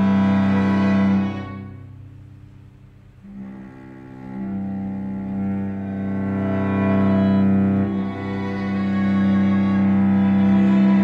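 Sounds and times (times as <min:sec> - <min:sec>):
string trio playing: 0:00.0 - 0:11.0.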